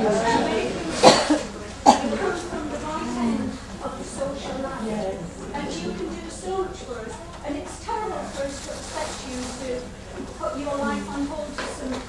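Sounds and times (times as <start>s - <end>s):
people talking: 0.0s - 12.0s
person coughing: 1.0s - 2.3s.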